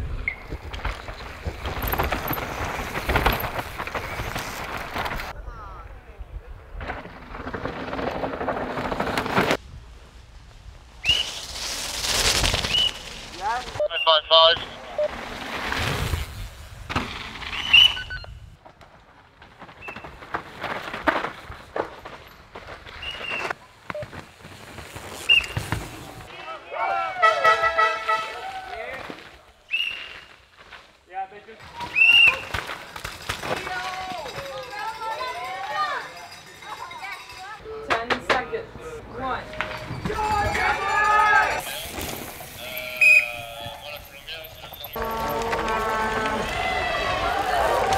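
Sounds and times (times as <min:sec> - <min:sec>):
bike tyre noise on dirt: 0:00.0 - 0:13.8, 0:14.7 - 0:37.6, 0:39.2 - 0:47.9
bike clicks and rattles: 0:00.2 - 0:05.3, 0:06.8 - 0:09.6, 0:32.4 - 0:38.4, 0:39.6 - 0:42.8
people shouting a cheer: 0:26.5 - 0:28.9, 0:45.0 - 0:47.9.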